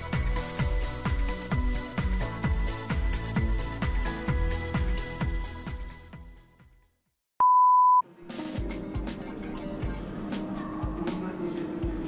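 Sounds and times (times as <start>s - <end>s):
background music with steady beat: 0.0s - 6.8s, 8.0s - 12.0s
electronic beep tone: 7.4s - 8.0s.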